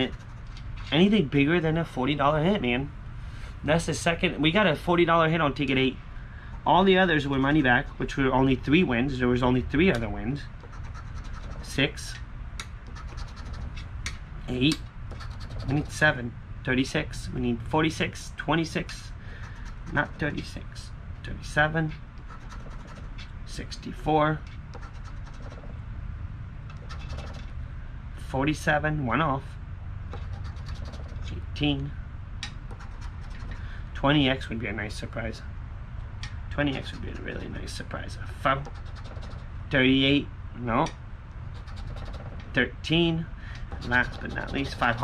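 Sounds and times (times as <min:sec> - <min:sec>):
coin scratching a ticket: 0:00.0 - 0:01.1, 0:10.6 - 0:12.0, 0:12.9 - 0:13.9, 0:15.1 - 0:16.1, 0:19.4 - 0:20.6, 0:21.9 - 0:23.3, 0:24.7 - 0:25.7, 0:26.7 - 0:27.5, 0:30.2 - 0:31.4, 0:32.7 - 0:33.7, 0:36.6 - 0:37.8, 0:38.6 - 0:39.5, 0:41.5 - 0:42.4, 0:43.7 - 0:45.0
steady low hum: 0:00.0 - 0:45.0
coin scraping lottery ticket: 0:12.9 - 0:13.8, 0:15.1 - 0:16.0, 0:26.7 - 0:27.5, 0:30.2 - 0:31.4.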